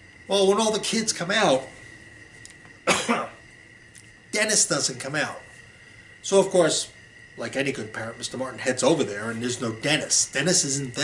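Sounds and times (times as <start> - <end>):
man coughing: 2.8 - 3.4.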